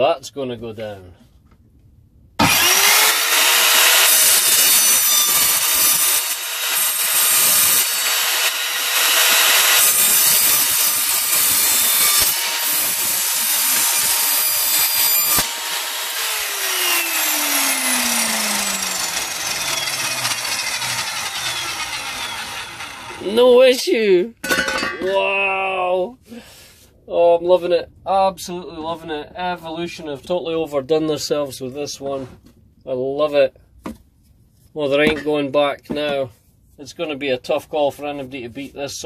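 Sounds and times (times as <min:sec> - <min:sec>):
saw motor winding down: 0:02.4 - 0:23.5
mitre saw cutting metal: 0:02.4 - 0:23.8.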